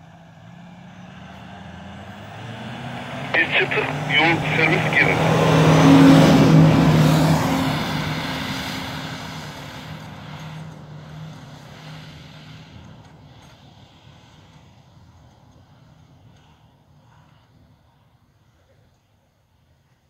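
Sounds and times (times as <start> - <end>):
pickup truck engine pulling away: 0.1 - 3.3.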